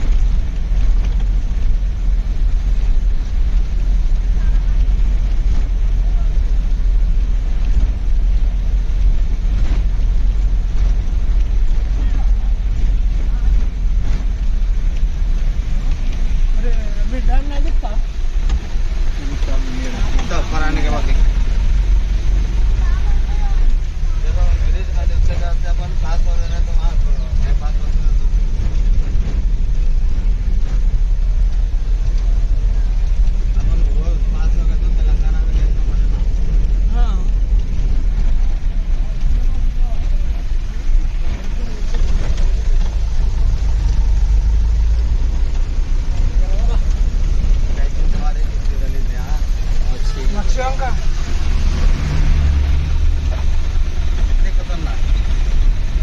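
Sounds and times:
vehicle interior low rumble: 0.0 - 56.0.

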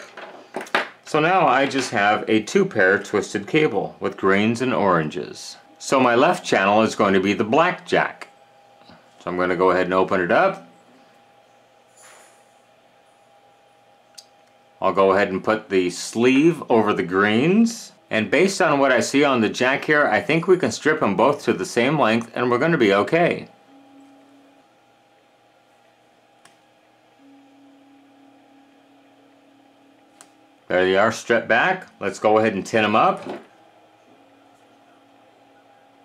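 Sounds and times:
faint electrical hum: 0.0 - 36.0
faint steady tone: 22.8 - 25.9, 27.2 - 33.1.

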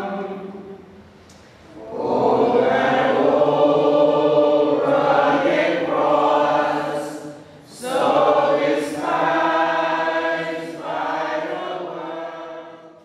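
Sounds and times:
choir singing held phrases: 0.0 - 1.0, 1.7 - 13.0.

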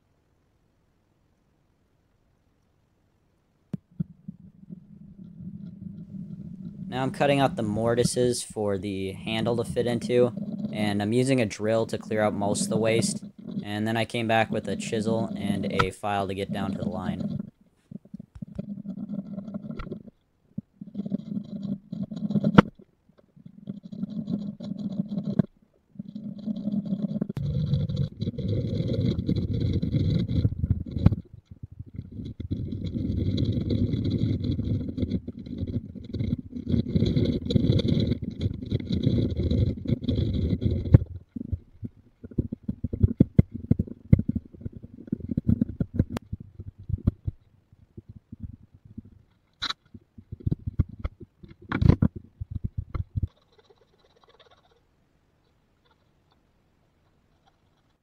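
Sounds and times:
hand tool scraping and knocking wood: 9.2 - 17.5.

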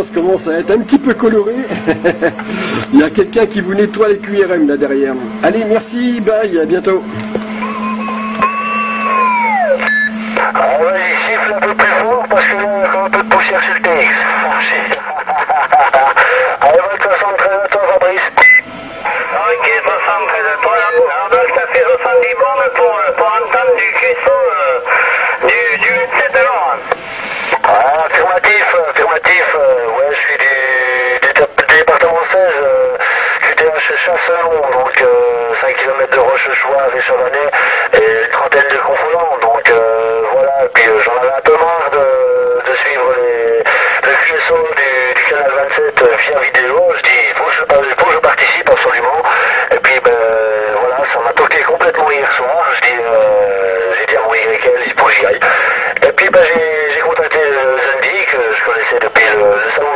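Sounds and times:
radio crackles: 0.0 - 59.9
voices over radio speaker: 0.0 - 59.9.

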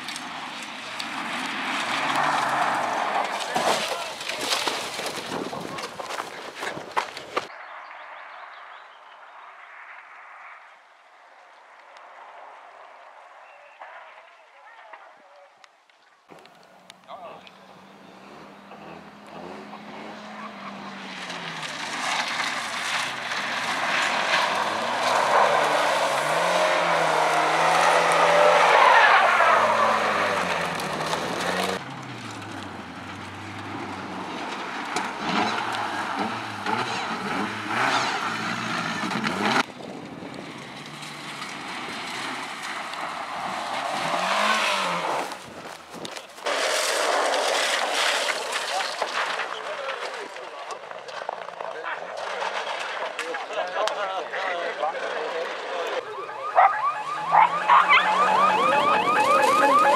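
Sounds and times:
rally car engines revving: 0.0 - 5.0, 16.4 - 45.8, 51.2 - 59.9.

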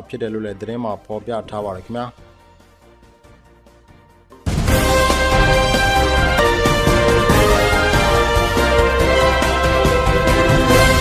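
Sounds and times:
faint background music: 0.0 - 3.4
station ident jingle: 4.5 - 11.0.

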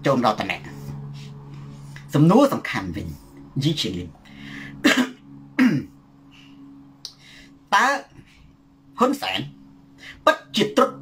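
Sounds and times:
soft breath: 4.2 - 4.8, 6.3 - 7.6.

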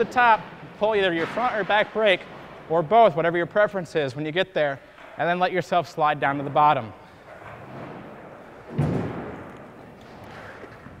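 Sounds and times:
tyres rolling on floor: 4.9 - 11.0
bike landing thud: 8.7 - 9.8.

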